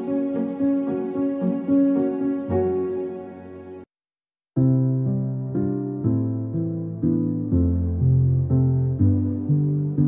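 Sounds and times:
slow relaxation piano music: 0:00.0 - 0:03.9, 0:04.6 - 0:10.0.

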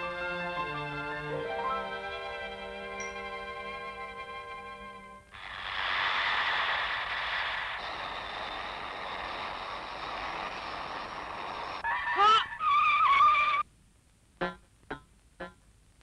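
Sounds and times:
cartoon scooter rushing hiss: 0:05.3 - 0:13.6.

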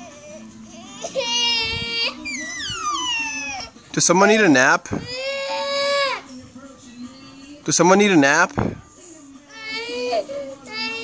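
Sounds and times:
girl crying: 0:00.8 - 0:03.8, 0:09.6 - 0:11.0.

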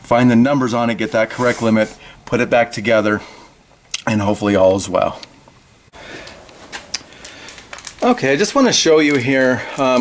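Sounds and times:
faint clicks or rustles: 0:06.2 - 0:09.9.

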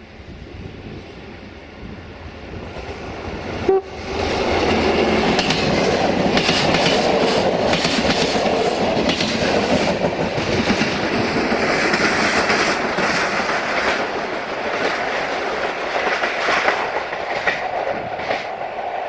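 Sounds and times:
train wheels rumbling on rails: 0:00.0 - 0:19.0
clickety-clack over rail joints: 0:04.2 - 0:19.0.

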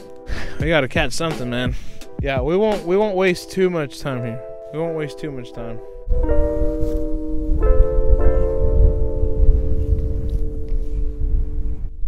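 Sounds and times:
music of sustained chords: 0:02.8 - 0:12.0
wind buffeting microphone: 0:05.8 - 0:12.0.

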